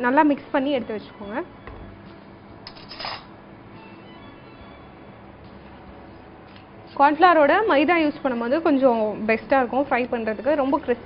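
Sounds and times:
woman talking: 0.0 - 1.5, 6.9 - 11.0
faint background music: 0.0 - 11.0
brief scrape or clatter: 2.7 - 3.3.

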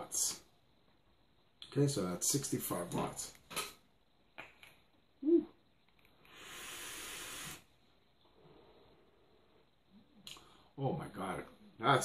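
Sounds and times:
vape airflow hiss: 6.1 - 7.8.

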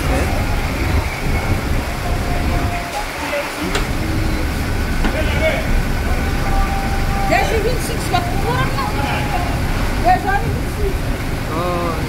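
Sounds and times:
truck engine rumbling: 0.0 - 12.0.

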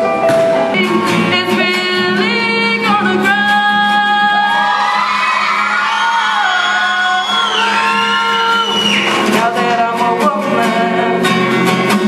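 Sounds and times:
musical accompaniment: 0.0 - 12.0
woman singing into a microphone: 0.6 - 5.1, 6.3 - 11.4.

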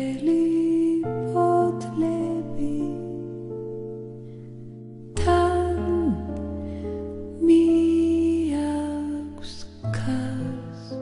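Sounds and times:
slow soft music: 0.0 - 11.0.

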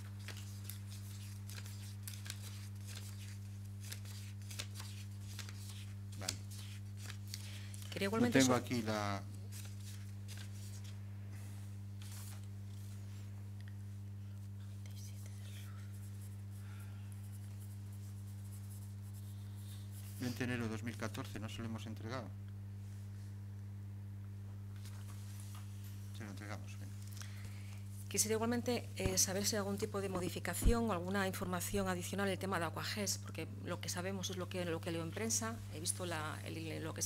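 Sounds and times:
paper rustling: 0.0 - 8.7, 9.4 - 11.0, 12.0 - 13.0
low electrical hum: 0.0 - 37.0.

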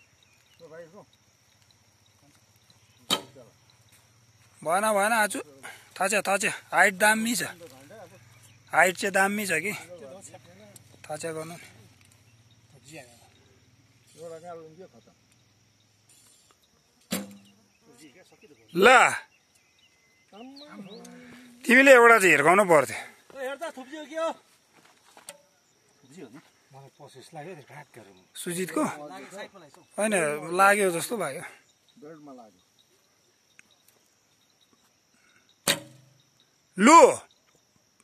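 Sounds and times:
bowstring snap and twang: 3.0 - 3.4, 17.0 - 17.6, 35.6 - 36.2
faint insect buzzing: 7.0 - 18.7
bow string snap: 35.7 - 36.1.

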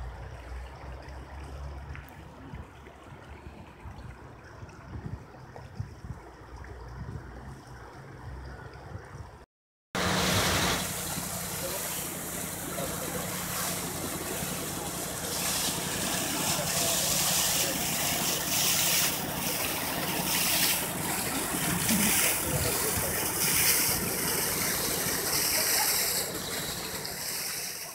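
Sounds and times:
low engine hum: 10.0 - 27.9
rushing floodwater: 10.0 - 27.9.

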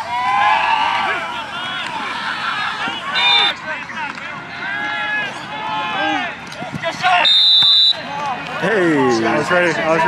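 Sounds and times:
people shouting: 0.0 - 3.8
referee's whistle blast: 3.2 - 3.6, 7.2 - 8.0.

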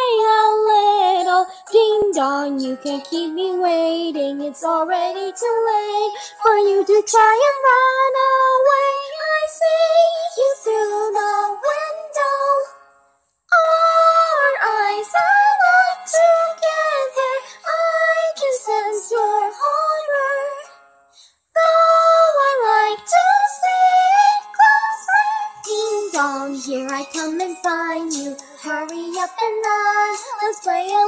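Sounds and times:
high-pitched singing voice: 0.0 - 12.7, 13.5 - 20.7, 21.6 - 31.0.

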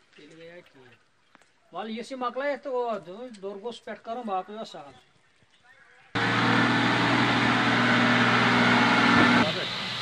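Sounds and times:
truck engine running: 6.2 - 10.0.

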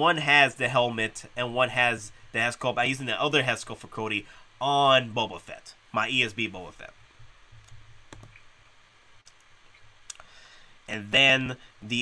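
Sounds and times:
faint low hum: 0.0 - 12.0
computer mouse clicks: 7.6 - 8.5.

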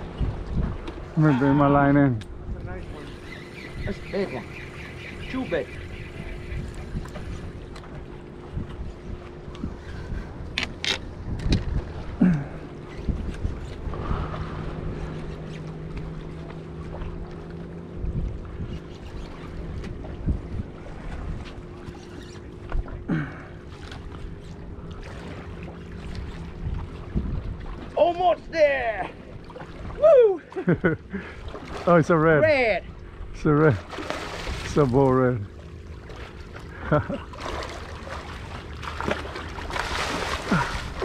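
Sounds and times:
wind buffeting microphone: 0.0 - 16.2, 17.8 - 21.6, 26.0 - 28.6
steady low hum: 0.0 - 41.0
water lapping against rocks: 35.9 - 41.0.

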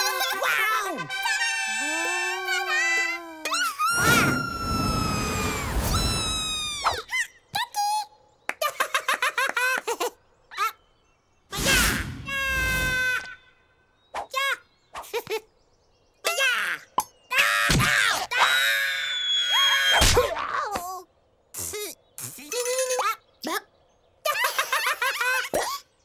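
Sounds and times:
squeaky cartoon chirps: 1.2 - 7.4
rushing whoosh with falling whistles: 3.8 - 7.0.

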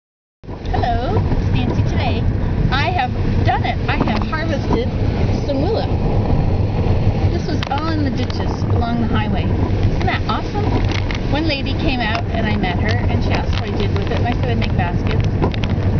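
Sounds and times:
car cabin road noise: 0.4 - 15.9
woman talking: 0.7 - 6.0, 7.3 - 15.4.

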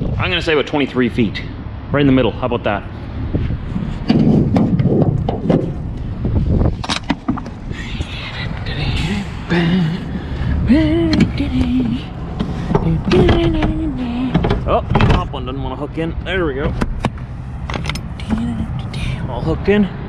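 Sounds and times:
metal door clanks and knocks: 4.1 - 5.8, 12.7 - 15.4
drawn-out pitched sounds: 7.0 - 20.0.

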